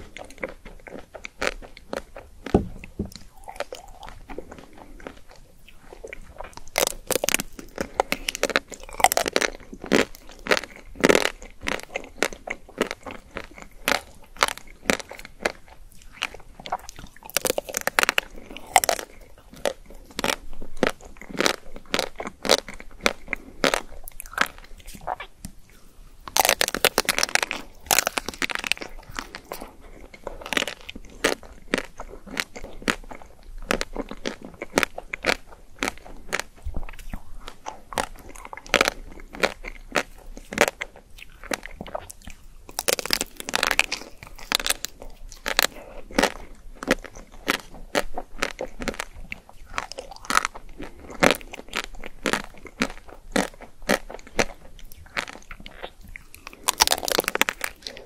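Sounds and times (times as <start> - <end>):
chewing with small crunches: 0.0 - 58.0
chocolate shell cracking: 26.3 - 28.9, 56.5 - 57.9.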